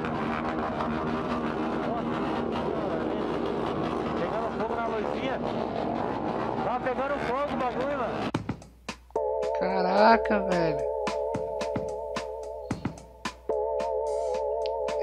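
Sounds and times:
people's voices: 0.0 - 8.3, 9.6 - 10.8.

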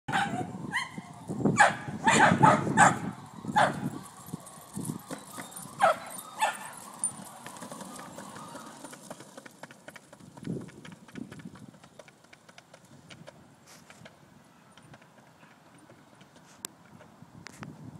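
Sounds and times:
skateboard wheels rolling on concrete: 0.1 - 17.9.

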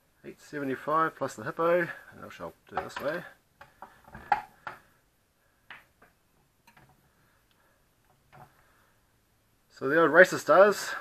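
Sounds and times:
faint clicks and light knocks: 5.6 - 8.7.

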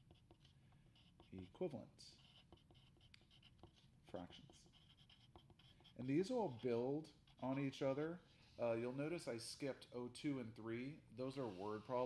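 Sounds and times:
pencil scratching on paper: 0.0 - 9.9, 11.0 - 12.0.

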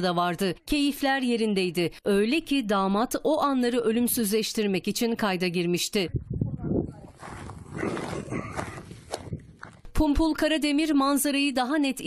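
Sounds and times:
rumbling and rustling on microphone: 6.1 - 9.9.

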